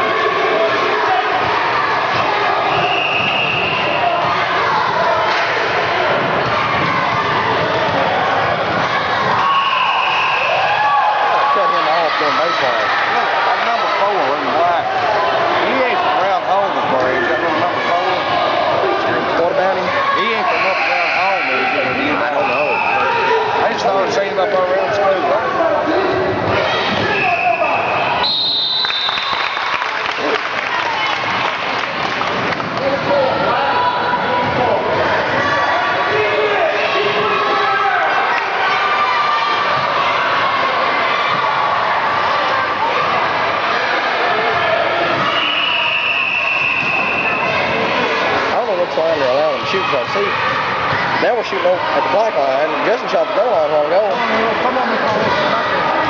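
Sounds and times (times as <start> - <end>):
crowd talking and calling out: 0.0 - 56.0
high-pitched squeals: 45.0 - 48.4.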